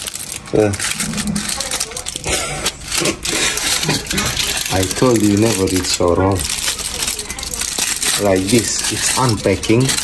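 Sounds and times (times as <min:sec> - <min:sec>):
aluminium foil crinkling: 0:00.0 - 0:10.0.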